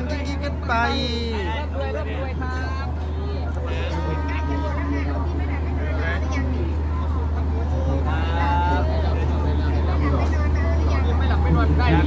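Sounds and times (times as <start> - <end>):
generator low drone: 0.0 - 12.0
people talking: 0.0 - 12.0.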